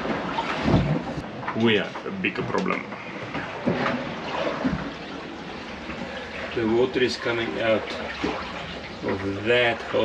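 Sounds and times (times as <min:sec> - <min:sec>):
water trickling into bilge: 0:03.0 - 0:10.0.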